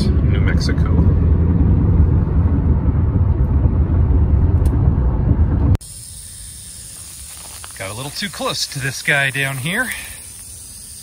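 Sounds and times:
car cabin road and engine rumble: 0.0s - 11.0s
rattlesnake rattling: 5.8s - 11.0s.

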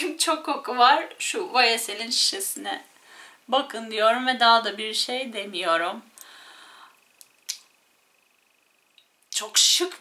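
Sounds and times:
faint hiss: 2.2s - 3.7s, 6.0s - 10.0s.

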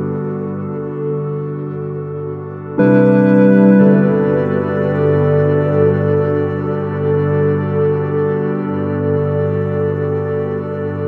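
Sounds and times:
slow ambient keyboard chords: 0.0s - 11.0s.

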